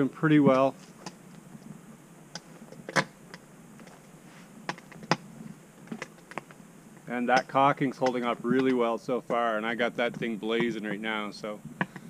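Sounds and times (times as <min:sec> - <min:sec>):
footsteps on twigs: 0:00.5 - 0:01.7.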